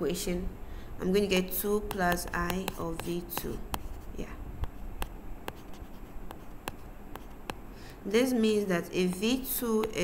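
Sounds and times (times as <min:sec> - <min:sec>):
stylus ticking on tablet: 0:01.7 - 0:03.9, 0:09.1 - 0:10.0.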